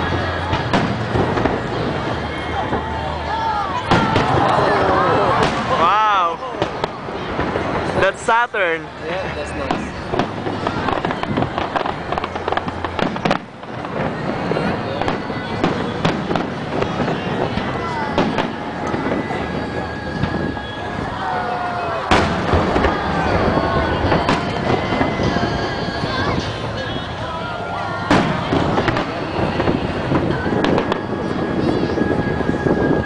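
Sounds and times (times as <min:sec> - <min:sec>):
fireworks bursting and crackling: 0:00.0 - 0:33.0.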